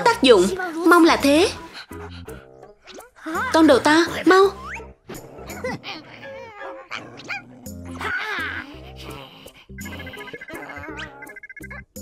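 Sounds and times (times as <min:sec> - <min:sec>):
background music: 0:00.0 - 0:12.0
cartoon dog barking: 0:09.8 - 0:11.4.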